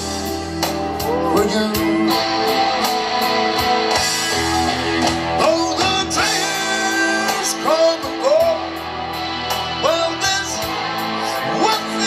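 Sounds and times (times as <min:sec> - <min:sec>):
bass: 0:00.0 - 0:12.0
electric guitar solo: 0:00.0 - 0:12.0.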